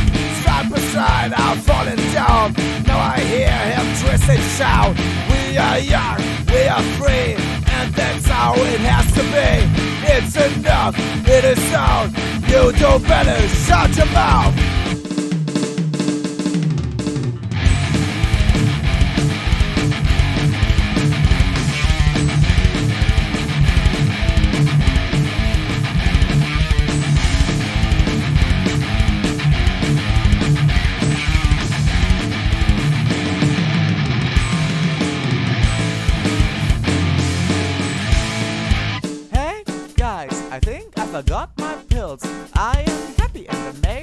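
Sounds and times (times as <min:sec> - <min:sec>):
electric guitar: 0:00.0 - 0:15.1, 0:16.6 - 0:44.0
drum kit steady beat: 0:00.0 - 0:44.0.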